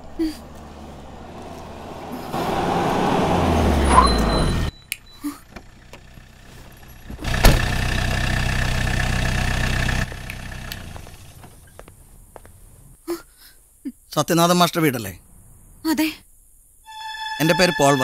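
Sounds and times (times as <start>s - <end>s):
vehicle engine running: 0.0s - 4.8s, 5.4s - 12.4s.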